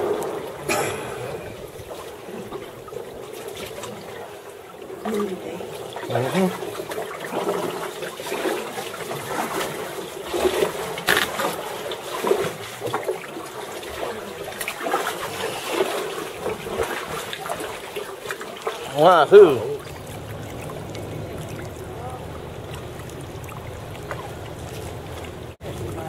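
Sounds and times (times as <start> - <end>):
water splashing around a kayak: 0.0 - 26.0.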